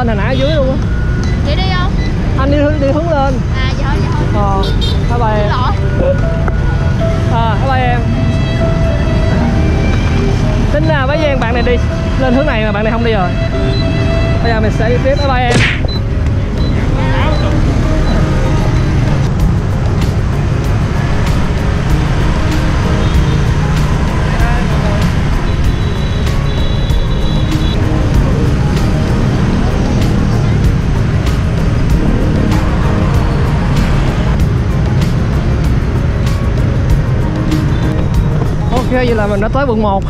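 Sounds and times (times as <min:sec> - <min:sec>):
traffic rumble on busy street: 0:00.0 - 0:40.0.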